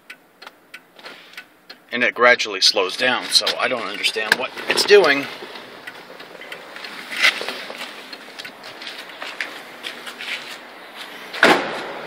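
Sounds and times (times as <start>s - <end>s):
turn signal flasher clicking: 0.0s - 1.9s, 3.3s - 9.9s
handling and rustling noise: 3.2s - 11.2s.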